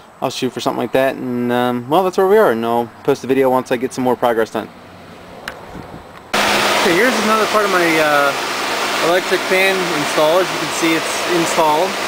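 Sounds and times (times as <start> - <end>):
radiator cooling fan rushing air: 5.7 - 12.0.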